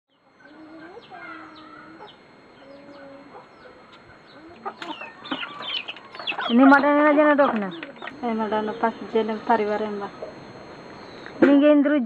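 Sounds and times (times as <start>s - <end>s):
small birds chirping: 0.1s - 11.4s
chickens clucking: 0.2s - 10.5s.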